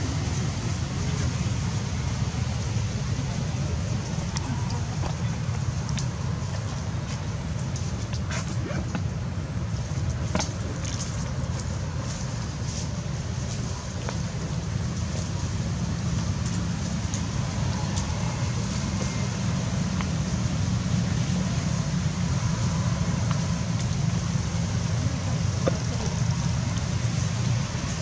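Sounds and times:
low rumbling background noise: 0:00.0 - 0:28.0.

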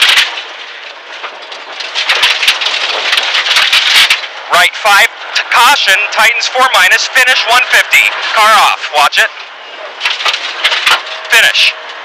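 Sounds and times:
sharp cracks: 0:00.0 - 0:08.6, 0:09.2 - 0:11.7
gravel road noise: 0:00.0 - 0:12.0
turbocharged car engine: 0:00.0 - 0:12.0.

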